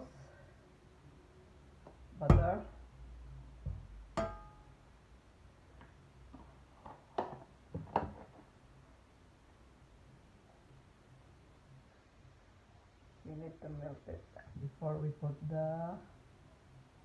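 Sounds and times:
metal cookware clank: 4.2s - 4.5s.

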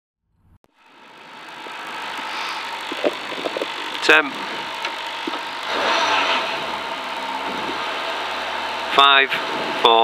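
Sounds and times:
car engine idling: 0.7s - 10.0s
engine blips: 0.7s - 10.0s.

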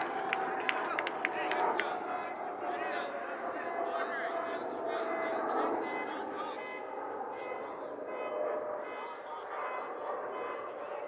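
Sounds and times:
distant players shouting: 0.0s - 4.4s, 5.0s - 11.0s
outdoor background noise: 0.0s - 11.0s.

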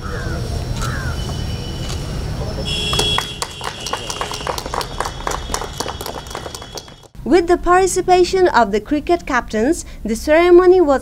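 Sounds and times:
small group clapping: 2.7s - 7.2s.

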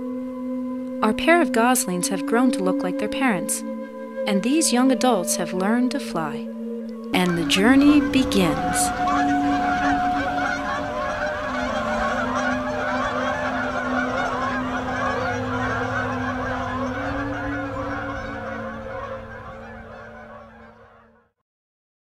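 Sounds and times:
flock of geese honking: 1.1s - 21.3s.

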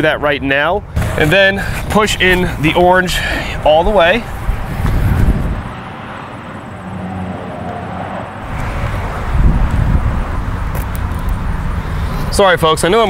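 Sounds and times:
motor vehicle hum: 0.8s - 13.0s
wind on microphone: 3.5s - 5.9s, 8.4s - 11.5s.

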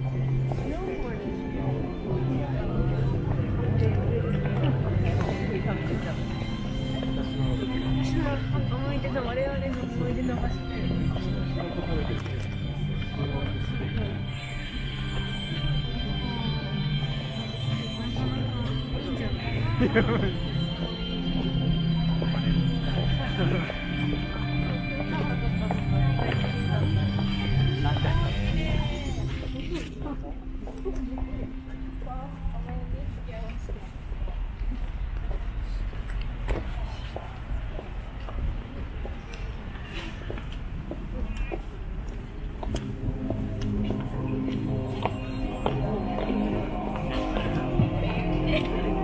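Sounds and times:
music with long held notes: 0.0s - 33.5s, 42.6s - 49.0s
people talking: 0.0s - 41.9s, 42.6s - 49.0s.

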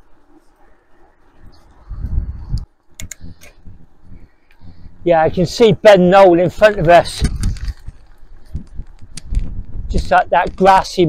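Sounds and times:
wind rumble on microphone: 0.1s - 11.0s.

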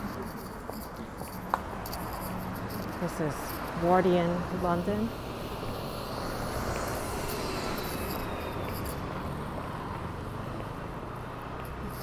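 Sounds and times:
distant traffic hum: 0.0s - 12.0s.

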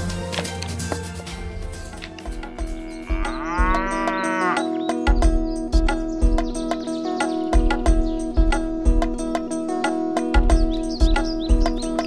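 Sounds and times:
background music with steady beat: 0.0s - 12.0s
cow mooing: 2.1s - 4.8s.

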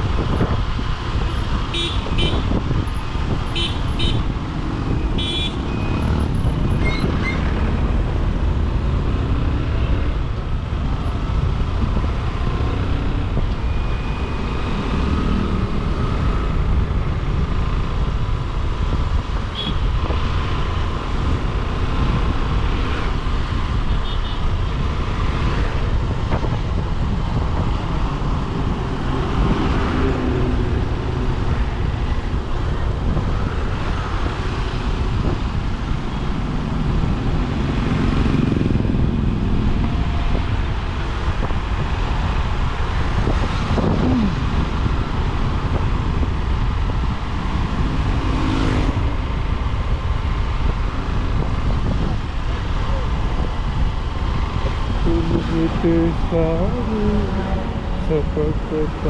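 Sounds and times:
motorcycle engine and road rumble: 0.0s - 59.0s.

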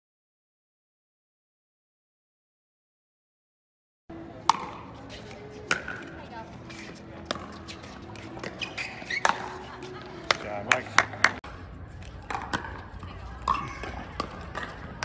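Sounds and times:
faint background voices: 4.1s - 11.8s.

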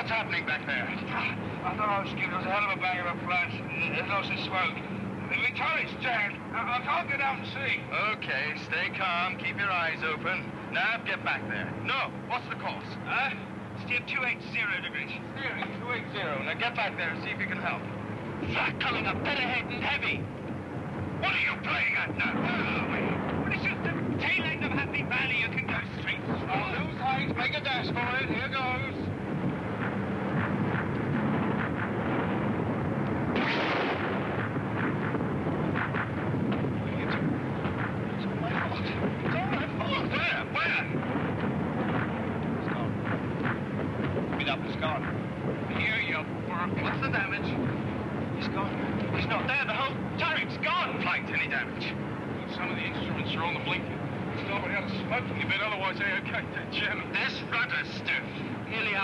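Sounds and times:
men's voices: 0.0s - 31.9s, 34.4s - 59.0s
bomber aircraft engines droning: 0.0s - 59.0s
flak bursts: 33.3s - 40.0s.

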